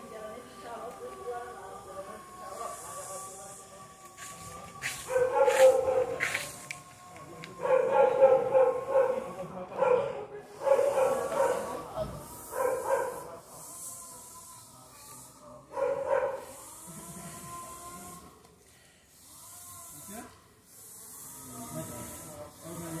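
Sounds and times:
dog barking: 5.1 - 6.3, 7.6 - 9.2, 9.8 - 11.8, 12.5 - 13.2, 15.8 - 16.5.

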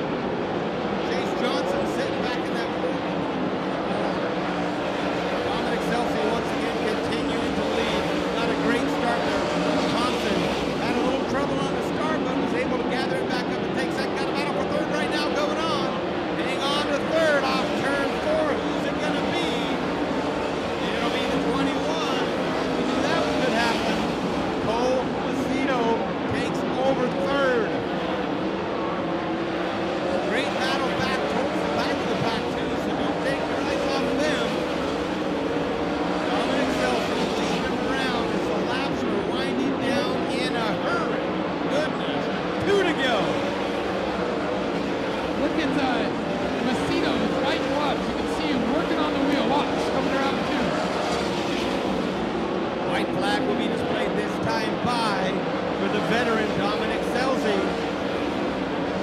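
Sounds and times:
race car engines running: 0.0 - 59.0
voices: 1.0 - 28.3, 29.5 - 52.0, 52.8 - 58.8.

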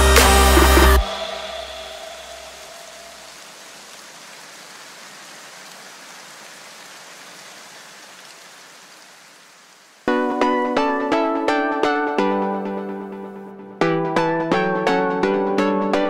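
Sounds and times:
electronic music: 0.0 - 3.3, 10.1 - 16.0
faint steady hiss: 0.5 - 10.1.

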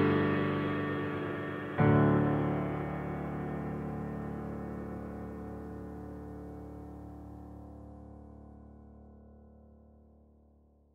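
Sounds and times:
background music chords: 0.0 - 9.0.

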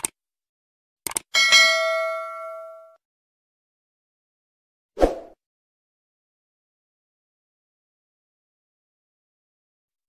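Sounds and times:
short clicks: 1.0 - 1.3
bell-like ding: 1.4 - 3.0.

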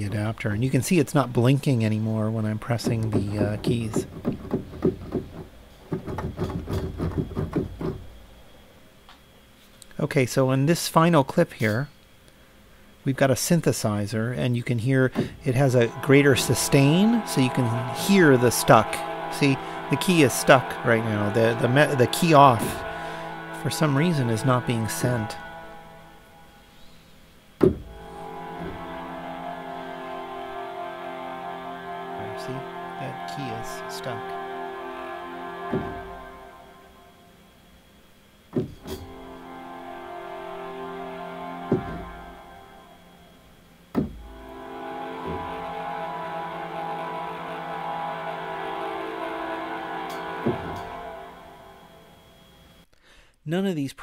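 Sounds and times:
sustained synthesizer notes: 0.6 - 7.2, 14.8 - 38.1, 38.7 - 52.8
sharp synthesizer hit: 15.4 - 26.8.

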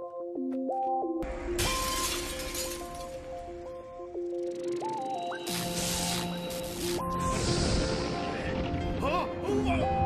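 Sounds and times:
shattering crash: 1.3 - 3.7.

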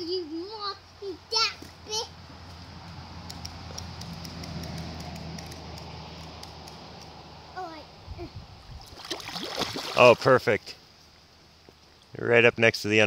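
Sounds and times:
river water rushing: 9.0 - 10.2.

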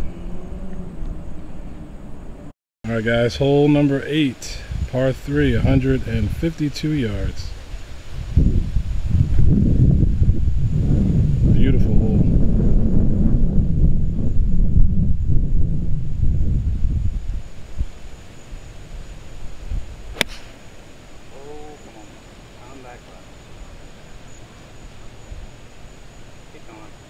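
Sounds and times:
wind buffeting microphone: 4.2 - 20.6
golf club striking ball: 20.1 - 20.7.

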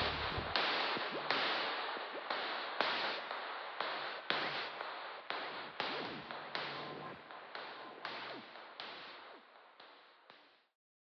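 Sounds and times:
synthesizer hissing cracks: 0.0 - 1.9.

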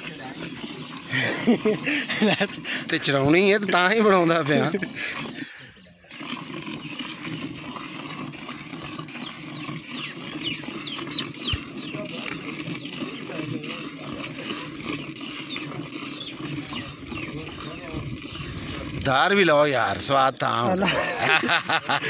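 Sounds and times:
milk squirting into steel pail: 0.0 - 22.0.

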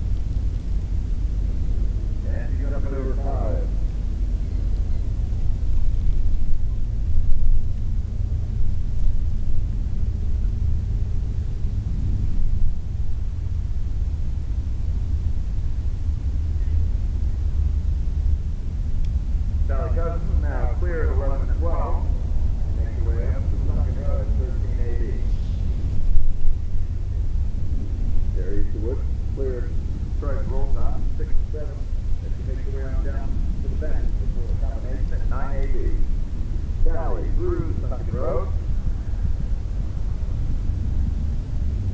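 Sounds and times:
steady low rumble: 0.0 - 41.9
indistinct voices talking: 2.2 - 3.8, 19.6 - 26.0, 26.9 - 38.7.

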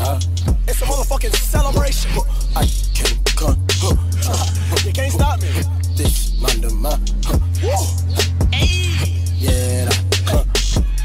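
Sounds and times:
deep bass notes: 0.0 - 11.0
hi-hat ticks: 0.0 - 11.0
rapped vocals: 0.0 - 11.0.

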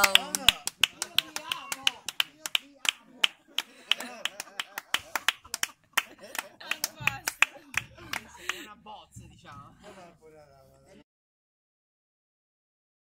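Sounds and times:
scattered hand clapping: 0.0 - 10.0
voices: 0.0 - 11.0.

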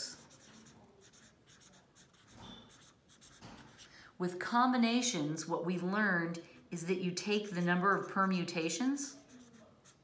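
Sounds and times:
pen writing on paper: 0.0 - 3.9, 9.1 - 10.0.

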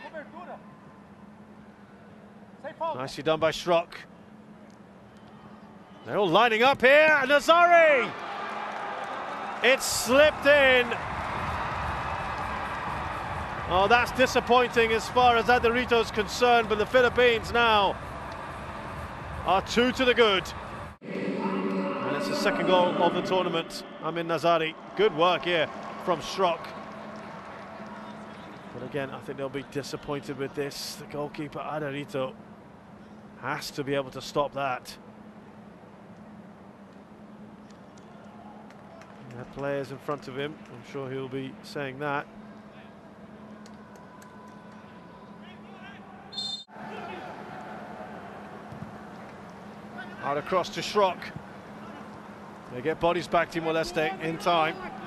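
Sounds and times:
stadium crowd noise: 0.0 - 55.0.

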